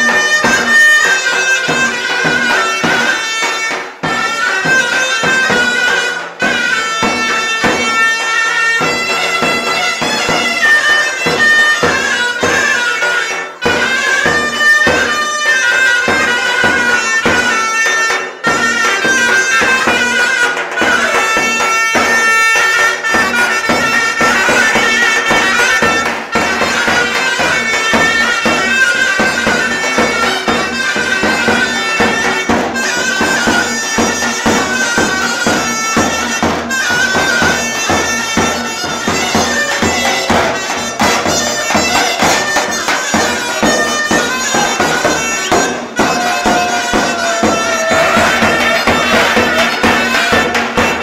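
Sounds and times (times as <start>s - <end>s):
big drum beating: 0.0s - 51.0s
shrill reed pipe melody: 0.0s - 51.0s.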